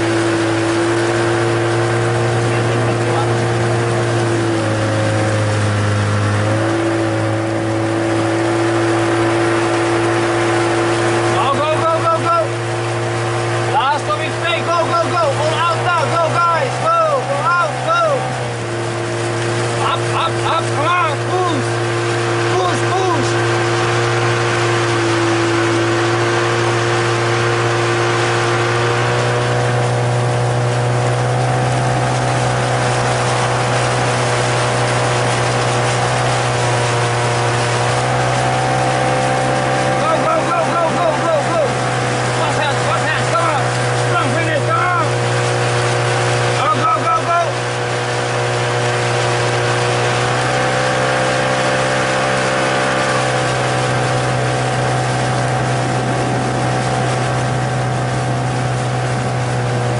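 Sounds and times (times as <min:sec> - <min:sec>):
motorboat engine running: 0:00.0 - 0:59.9.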